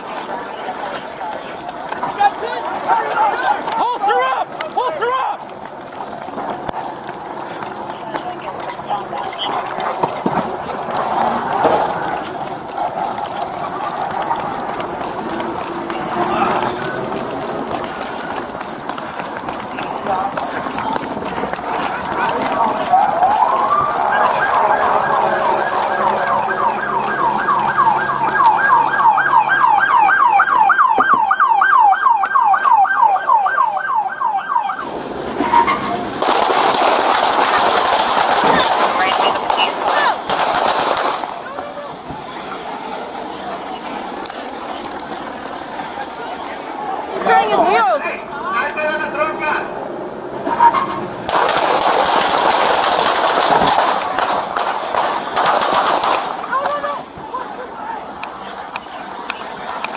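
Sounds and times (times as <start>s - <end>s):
police siren yelping: 6.6s - 35.8s
loud burst of noise: 51.2s - 56.5s.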